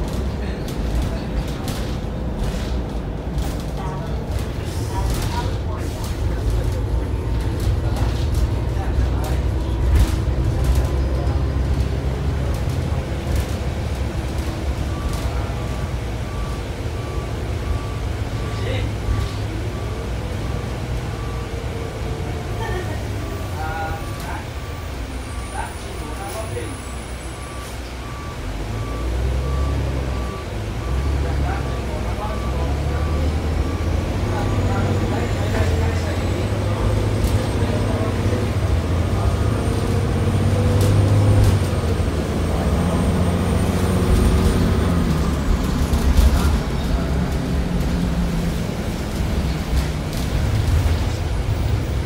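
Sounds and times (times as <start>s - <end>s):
bus diesel engine accelerating: 0.0s - 52.0s.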